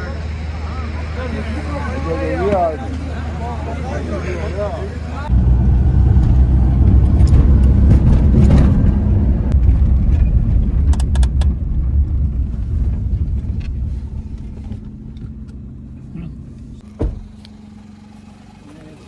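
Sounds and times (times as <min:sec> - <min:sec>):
car engine and tyre rumble: 0:00.0 - 0:19.0
thump: 0:17.0 - 0:17.3.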